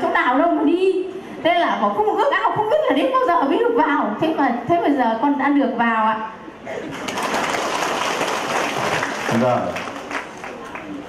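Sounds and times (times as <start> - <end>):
congregation applauding: 6.9 - 11.0.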